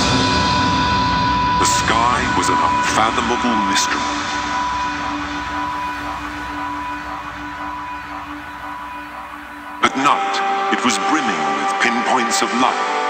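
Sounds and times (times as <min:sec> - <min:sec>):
airy noise wash: 0:00.0 - 0:13.0
held synth drone: 0:00.0 - 0:13.0
spoken vocal sample: 0:01.6 - 0:04.2, 0:09.8 - 0:12.7.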